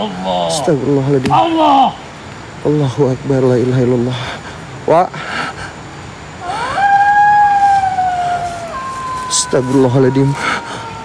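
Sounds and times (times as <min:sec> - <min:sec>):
long high howl: 0:06.4 - 0:11.0.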